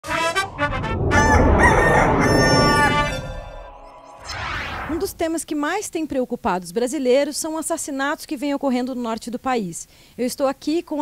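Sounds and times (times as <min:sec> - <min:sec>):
rooster crowing: 0:00.8 - 0:03.8.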